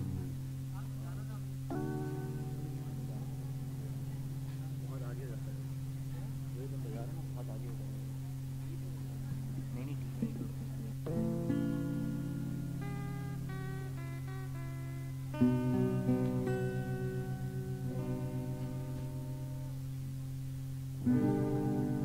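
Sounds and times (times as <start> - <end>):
steady low tone: 0.0 - 22.0
acoustic guitar strumming chords: 1.6 - 5.2, 11.0 - 20.2, 20.8 - 22.0.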